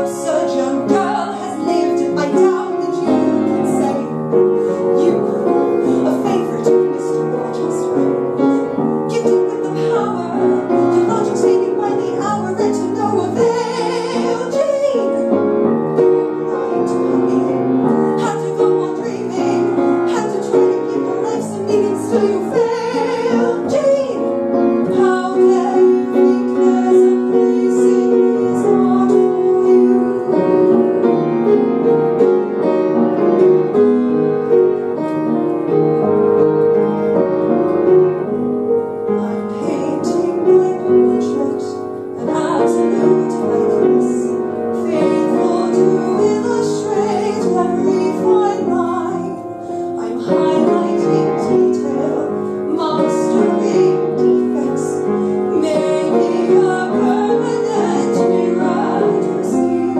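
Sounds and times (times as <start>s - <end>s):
woman singing a slow ballad: 0.0s - 8.2s, 9.1s - 15.4s, 16.8s - 31.0s, 39.1s - 59.9s
piano playing sustained chords: 0.0s - 59.9s.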